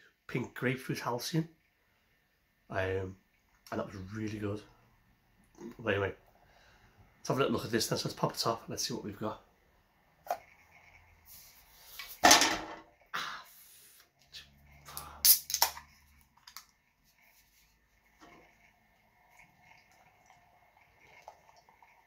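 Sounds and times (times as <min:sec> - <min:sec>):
can ring-pull cracking with hiss: 0:15.0 - 0:15.9
beer pouring into a glass: 0:18.0 - 0:22.0.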